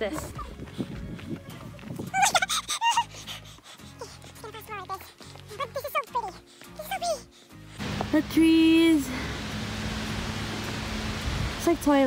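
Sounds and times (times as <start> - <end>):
outdoor rushing noise: 7.8 - 12.0.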